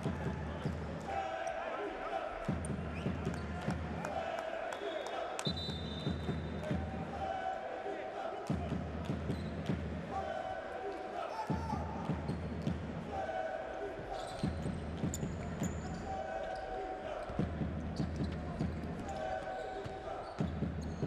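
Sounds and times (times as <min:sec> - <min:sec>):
crowd chanting: 0:00.0 - 0:05.5, 0:06.1 - 0:20.5
high whistle-like tone: 0:04.8 - 0:06.4.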